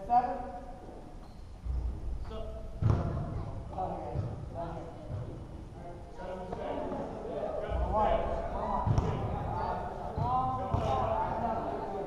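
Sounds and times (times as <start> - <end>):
voices in large hall: 0.0 - 12.0
basketball bouncing on gym floor: 2.8 - 3.4, 5.0 - 5.5.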